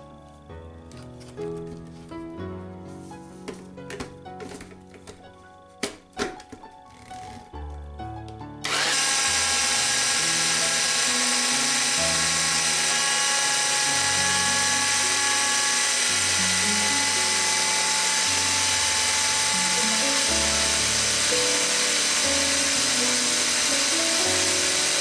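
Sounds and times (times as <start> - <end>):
background music: 0.0 - 25.0
blender motor grinding: 8.6 - 25.0.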